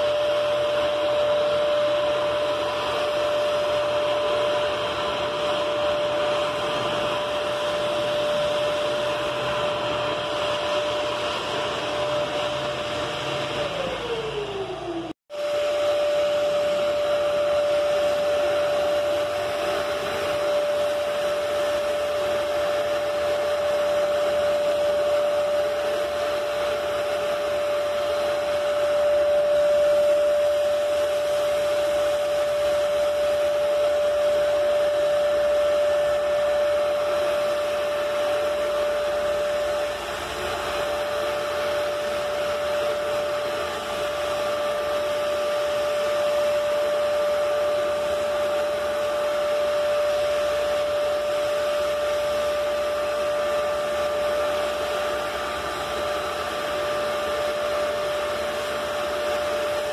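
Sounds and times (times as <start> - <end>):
electric paint sprayer whining: 0.0 - 59.9.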